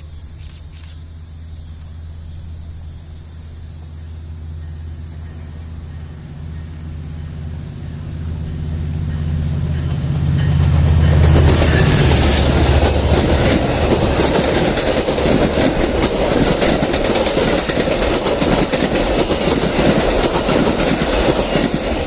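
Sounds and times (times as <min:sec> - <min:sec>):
diesel locomotive engine: 0:00.0 - 0:22.0
train cars rushing past: 0:03.4 - 0:22.0
wheels clacking over rail joints: 0:08.4 - 0:22.0.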